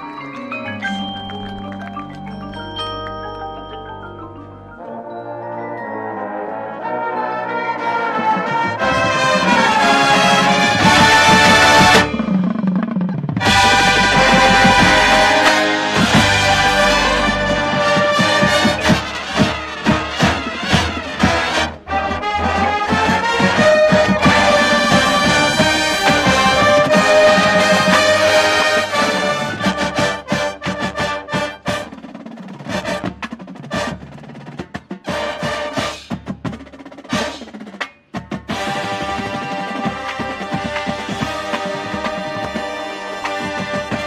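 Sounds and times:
bugles playing brass chords: 0:04.8 - 0:12.3, 0:13.4 - 0:32.1, 0:35.1 - 0:36.0, 0:38.5 - 0:44.0
marching drums: 0:07.8 - 0:44.0
sharp percussion hits: 0:08.5 - 0:34.0.

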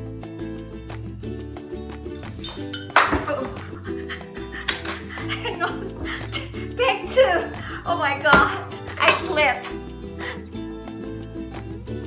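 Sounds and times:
background music: 0:00.0 - 0:12.0
stick clinking glass bottle: 0:02.4 - 0:03.6.

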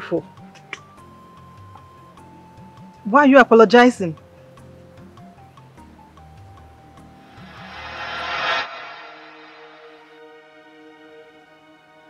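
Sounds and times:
soft film score: 0:04.1 - 0:12.0.

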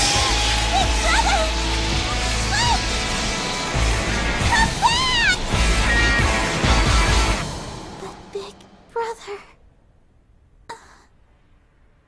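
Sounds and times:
young woman moaning: 0:10.7 - 0:11.1.

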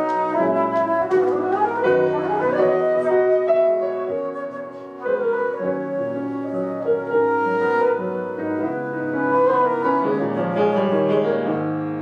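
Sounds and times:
flute holding long notes: 0:00.0 - 0:10.6
grand piano playing: 0:00.0 - 0:12.0.

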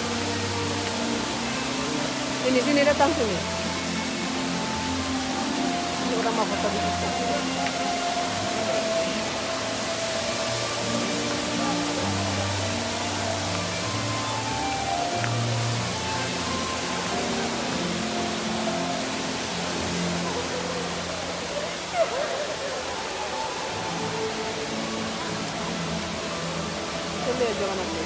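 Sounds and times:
distant crowd voices: 0:00.0 - 0:28.0
fountain water hissing: 0:00.0 - 0:28.0
soft slow background music: 0:00.0 - 0:28.0.

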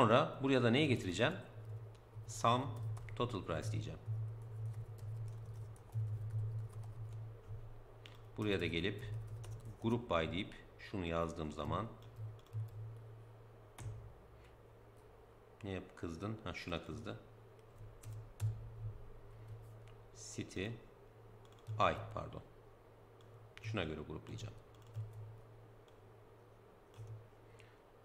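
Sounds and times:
steady low hum: 0:00.0 - 0:28.0
keyboard typing: 0:01.6 - 0:08.3, 0:09.1 - 0:09.8, 0:11.6 - 0:13.1, 0:17.8 - 0:18.6, 0:21.4 - 0:22.0, 0:24.7 - 0:26.0, 0:26.9 - 0:27.2
computer keyboard keystrokes: 0:04.4 - 0:07.2, 0:11.6 - 0:12.8, 0:18.0 - 0:18.6, 0:21.4 - 0:21.8, 0:24.7 - 0:25.2, 0:26.9 - 0:27.2.

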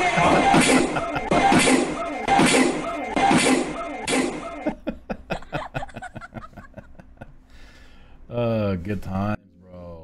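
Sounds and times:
man laughing in breathy bursts: 0:04.6 - 0:07.6.

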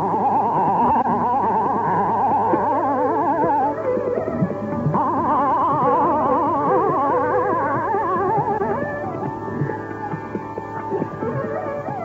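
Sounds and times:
steady drone: 0:00.0 - 0:12.0.

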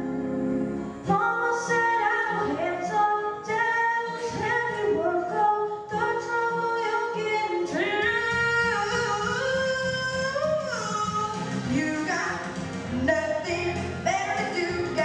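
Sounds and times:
instrumental accompaniment: 0:00.0 - 0:03.0
girl singing into a microphone: 0:01.0 - 0:15.0.

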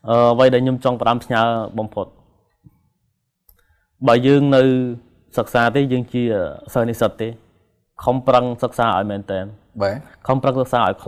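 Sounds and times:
man speaking: 0:00.0 - 0:02.3, 0:04.0 - 0:11.0.

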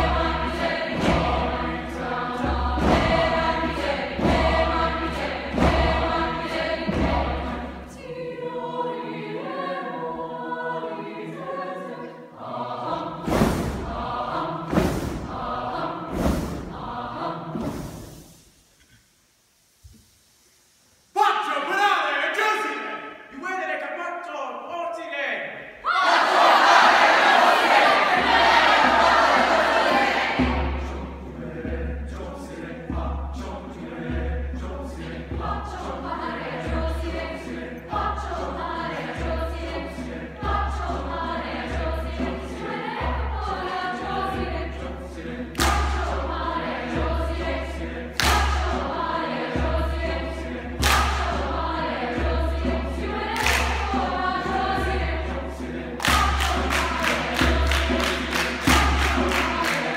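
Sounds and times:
quiet choral singing: 0:00.0 - 0:18.7, 0:25.8 - 0:59.9
choir massed shout: 0:25.8 - 0:30.7
loud sharp percussive strike: 0:48.2 - 0:48.8, 0:50.8 - 0:51.4, 0:53.4 - 0:54.0.

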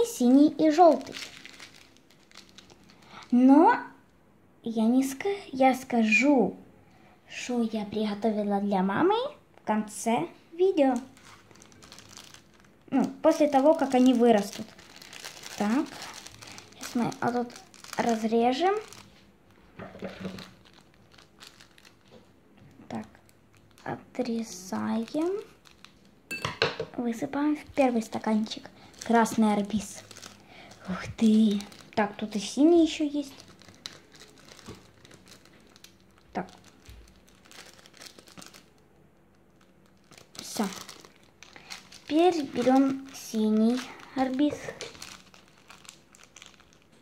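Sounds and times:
plastic sachet crinkling: 0:00.0 - 0:03.8, 0:10.6 - 0:26.2, 0:27.0 - 0:47.0.

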